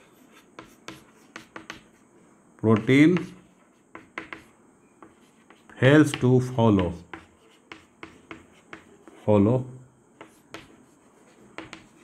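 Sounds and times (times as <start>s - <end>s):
chalk writing on chalkboard: 0.0s - 2.1s, 2.7s - 9.4s, 10.2s - 12.0s.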